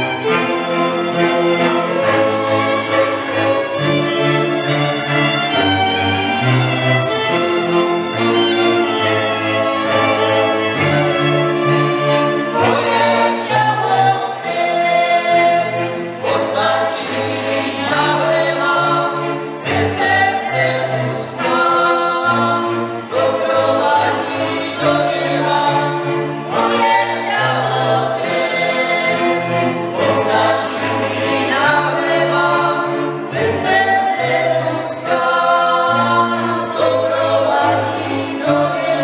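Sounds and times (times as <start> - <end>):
fiddles playing: 0.0 - 39.0
group singing: 0.0 - 39.0.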